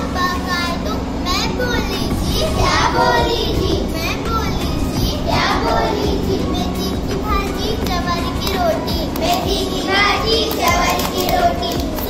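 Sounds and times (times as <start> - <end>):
girls singing a chant: 1.8 - 12.0.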